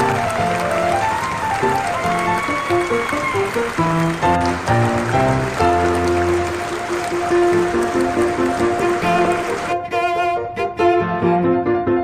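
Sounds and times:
string orchestra playing: 0:03.8 - 0:11.8.

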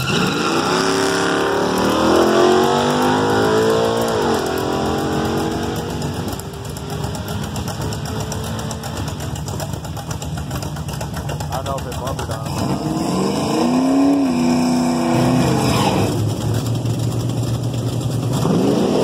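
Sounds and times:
drag-racing cars accelerating: 0:00.0 - 0:19.0.

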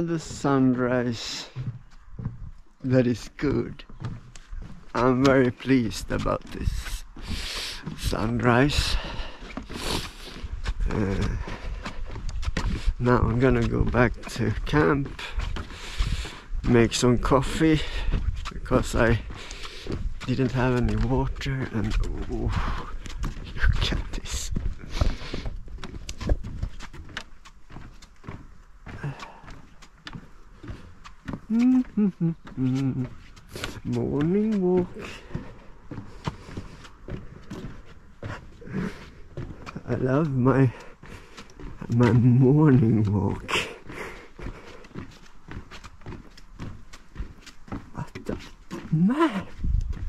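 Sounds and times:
footsteps on a path: 0:00.0 - 0:50.0
man laughing: 0:10.8 - 0:11.5, 0:31.5 - 0:33.1, 0:42.8 - 0:44.5
man saying ah: 0:31.5 - 0:33.1.

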